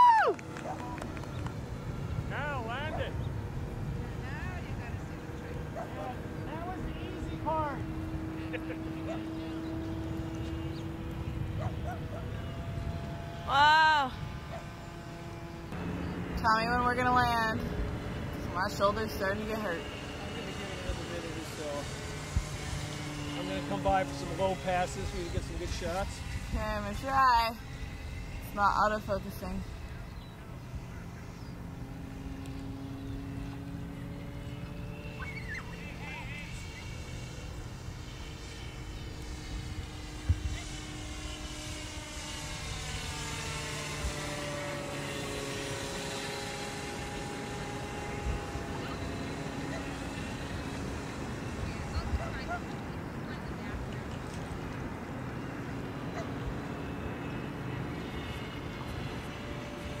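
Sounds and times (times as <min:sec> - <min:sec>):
model plane motor whining: 0:00.0 - 1:00.0.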